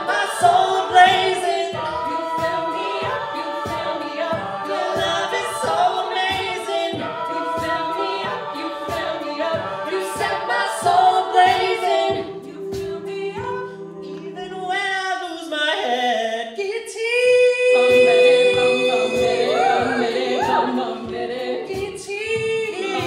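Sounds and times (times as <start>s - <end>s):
beatboxed vocal percussion: 0.0s - 14.8s, 17.1s - 23.0s
a cappella group singing harmonies: 0.0s - 23.0s.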